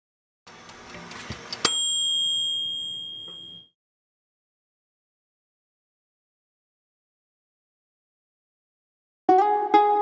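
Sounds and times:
bright bell-like ding: 1.6s - 3.8s.

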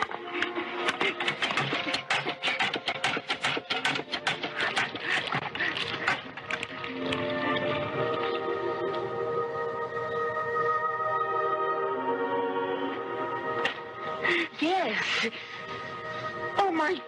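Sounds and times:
hand water pump clattering: 0.0s - 7.2s
film music with held chords: 0.0s - 17.0s.

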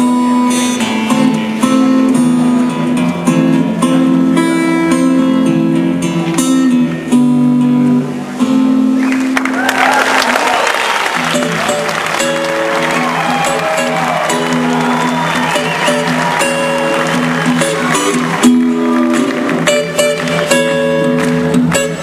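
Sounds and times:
acoustic guitars playing chords: 0.0s - 22.0s
audience applauding: 9.0s - 22.0s.

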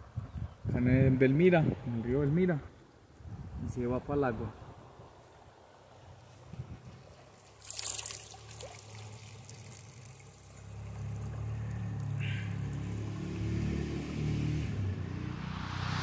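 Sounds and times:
river water splashing: 6.8s - 13.4s.

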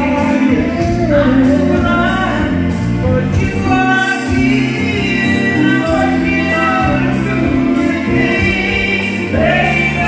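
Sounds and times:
soul band playing: 0.0s - 10.0s.

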